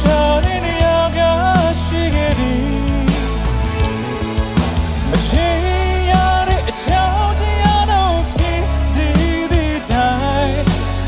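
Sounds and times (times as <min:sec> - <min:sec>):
man singing: 0:00.0 - 0:04.4, 0:05.0 - 0:11.0
live band playing: 0:00.0 - 0:11.0.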